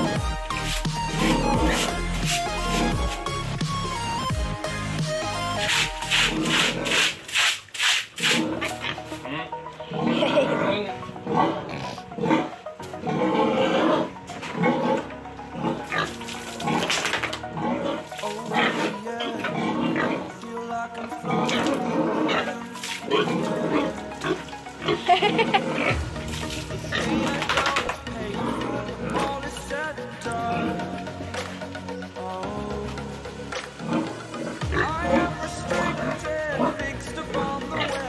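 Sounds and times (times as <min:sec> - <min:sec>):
pig calling: 0:00.0 - 0:07.3, 0:08.2 - 0:38.0
background music: 0:00.0 - 0:38.0.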